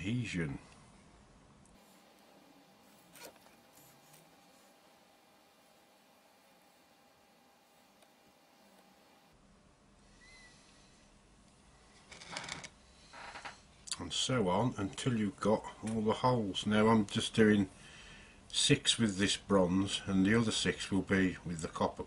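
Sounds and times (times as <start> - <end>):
stick scraping: 2.8 - 4.6.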